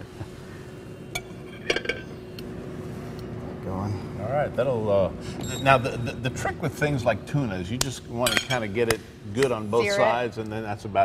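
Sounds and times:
faint hum: 0.0s - 11.0s.

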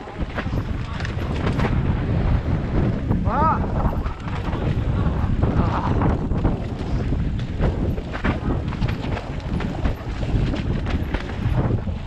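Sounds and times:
bike knocks and rattles: 0.0s - 12.0s
tyres rumbling on dirt trail: 0.0s - 12.0s
wind buffeting microphone: 0.0s - 12.0s.

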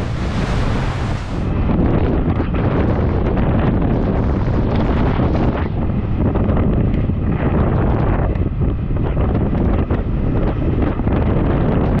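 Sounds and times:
water splashing at hull: 0.0s - 1.7s
wind buffeting microphone: 0.0s - 12.0s.

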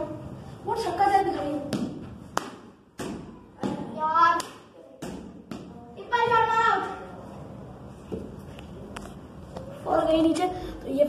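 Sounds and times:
ball bouncing off floor and walls: 1.2s - 6.4s.

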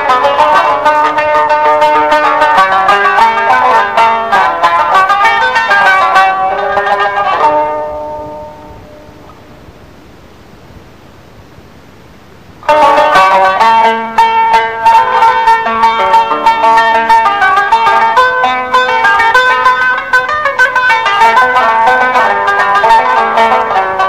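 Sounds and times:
plucked string improvisation: 0.0s - 9.9s, 12.6s - 24.0s
faint hiss: 0.0s - 24.0s.

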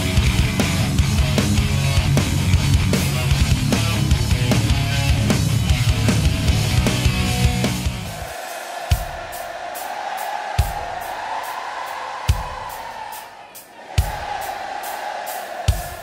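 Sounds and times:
rock band wash of sound: 0.0s - 16.0s.

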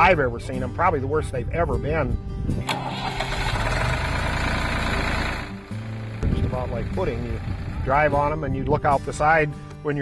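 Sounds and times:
tractor engine starting: 2.6s - 8.0s
tractor engine idling: 2.7s - 8.2s.

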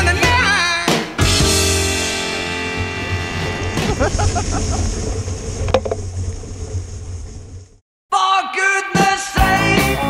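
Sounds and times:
wind rumbling on microphone: 2.7s - 7.8s.

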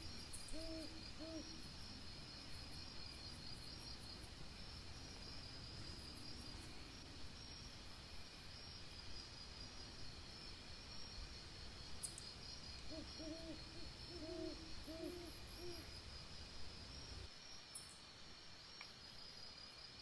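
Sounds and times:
insects chirring: 0.0s - 20.0s
owl hooting: 0.4s - 1.6s, 12.9s - 15.9s.

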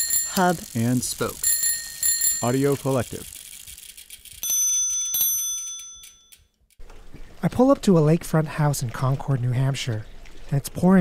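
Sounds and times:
fast light ticking: 0.0s - 4.7s
bicycle bell ringing: 0.0s - 6.6s.

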